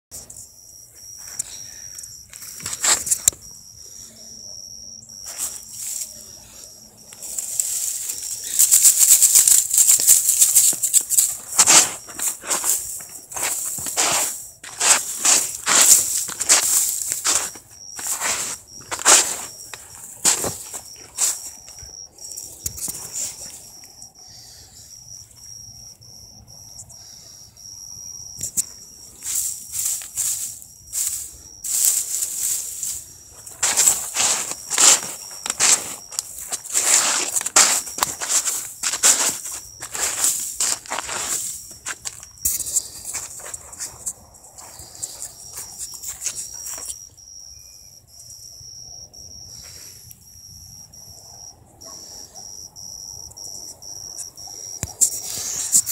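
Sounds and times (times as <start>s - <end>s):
cricket trilling: 0.1s - 55.9s
dry grass rustling and crackling: 5.2s - 23.9s, 28.4s - 47.0s.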